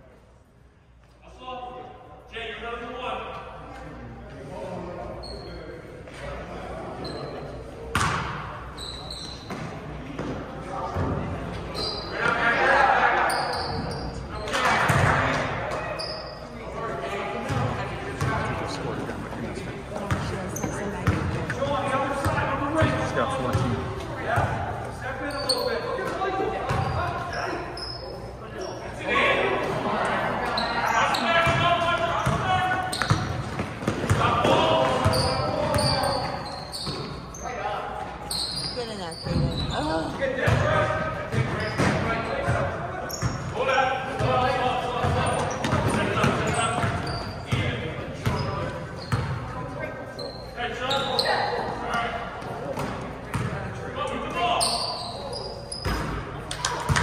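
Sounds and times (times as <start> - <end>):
echoing voices in a hall: 0.0 - 57.0.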